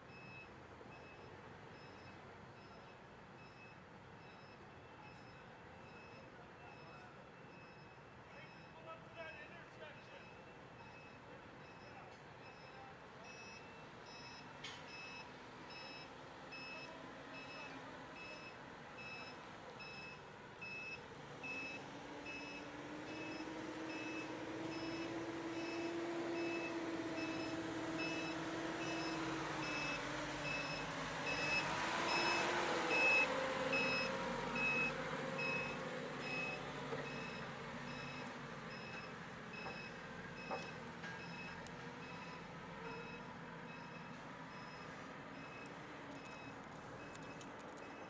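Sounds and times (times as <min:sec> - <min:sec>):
backup alarm beeping: 0:00.1 - 0:48.0
forklift engine: 0:17.4 - 0:48.0.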